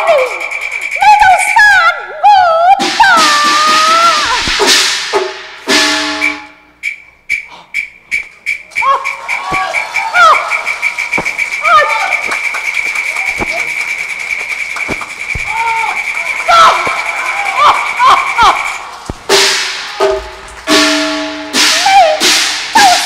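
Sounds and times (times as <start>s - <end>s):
loud percussion crashes: 2.8s - 6.4s, 9.2s - 23.0s
high-pitched percussion roll: 2.8s - 23.0s.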